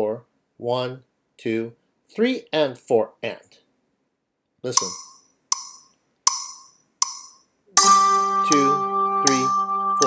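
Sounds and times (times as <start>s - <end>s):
wood block clicks: 4.8s - 7.5s
sustained pitched note: 7.8s - 10.0s.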